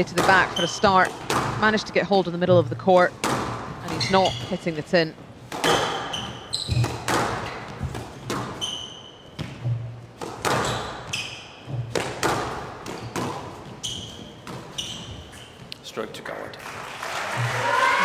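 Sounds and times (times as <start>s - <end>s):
shoes squeaking on court floor: 0.0s - 15.9s
squash ball cracks: 3.2s - 3.7s, 11.9s - 13.4s.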